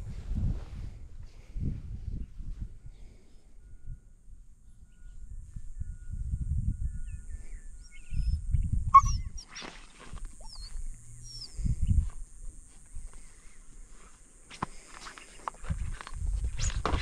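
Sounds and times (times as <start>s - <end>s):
low rumbling microphone noise: 0.0s - 3.1s
faint bird chirps: 2.2s - 9.8s, 10.4s - 12.0s.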